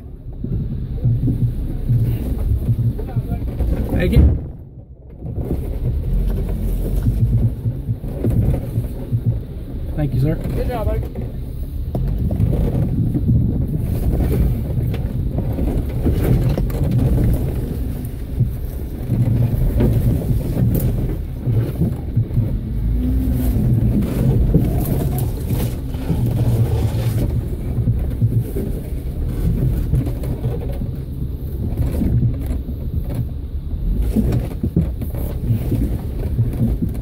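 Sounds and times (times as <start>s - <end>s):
vehicle engine low rumble: 0.0s - 37.0s
sharp knocks: 0.4s - 4.8s.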